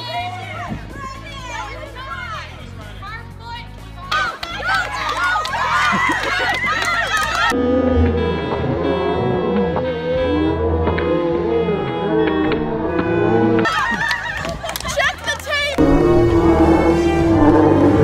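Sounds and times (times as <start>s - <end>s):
people shouting and cheering: 4.0s - 7.6s, 10.4s - 18.0s.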